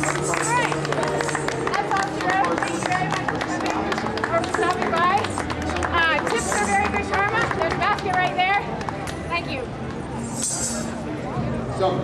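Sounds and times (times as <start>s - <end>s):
people calling out and talking: 0.0s - 12.0s.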